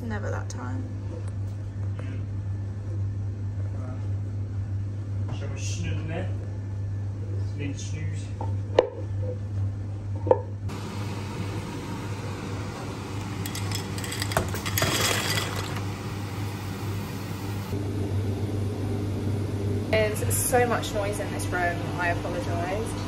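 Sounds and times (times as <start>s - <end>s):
steady low hum: 0.0s - 23.0s
pasta clattering out of a bowl: 13.4s - 15.8s.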